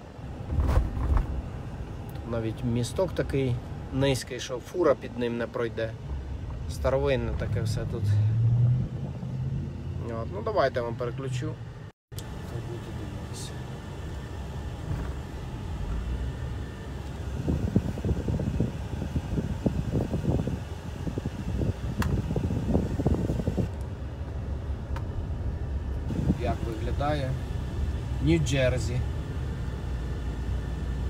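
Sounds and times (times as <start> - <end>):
car road and engine rumble: 0.0 - 31.0
ventilation fan hum: 12.2 - 31.0.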